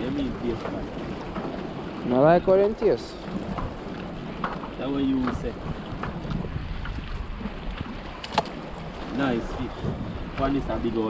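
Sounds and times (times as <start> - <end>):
sea water washing on rocks: 0.0 - 11.0
wind on microphone: 0.0 - 11.0.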